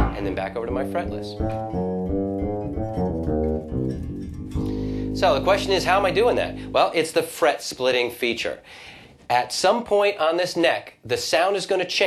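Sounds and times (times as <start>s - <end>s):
synthesized fretless bass notes: 0.0s - 7.0s.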